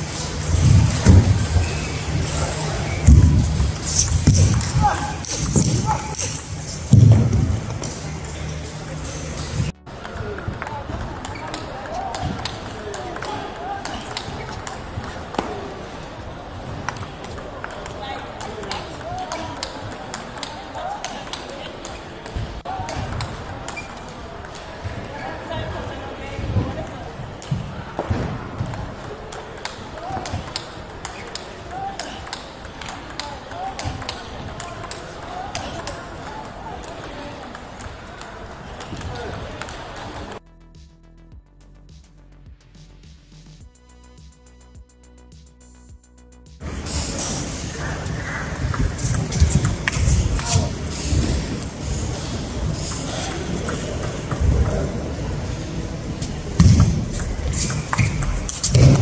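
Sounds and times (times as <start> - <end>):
low thumps: 0.0 - 11.0
distant table tennis balls: 0.0 - 40.4, 46.6 - 59.0
table tennis ball clicking: 8.9 - 15.5, 16.9 - 24.8, 28.6 - 40.4, 48.6 - 55.6, 56.6 - 59.0.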